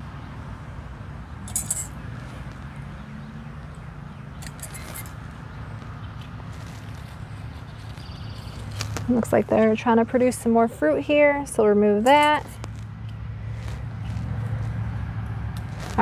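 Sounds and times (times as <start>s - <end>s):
pruners snipping shoots: 4.4s - 9.8s.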